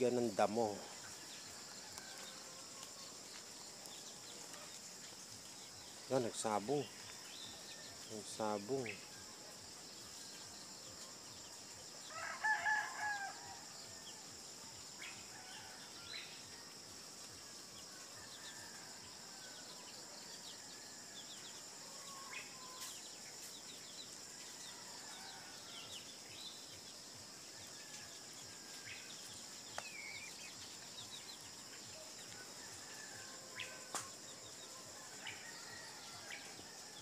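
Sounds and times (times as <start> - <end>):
insects buzzing: 0.0 - 37.0
rooster crowing: 12.0 - 13.8, 24.4 - 26.0, 32.3 - 37.0.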